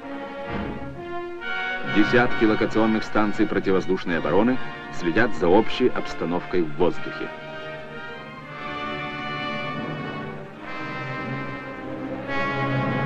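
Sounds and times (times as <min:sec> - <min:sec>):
orchestral brass chords: 0:00.0 - 0:13.0.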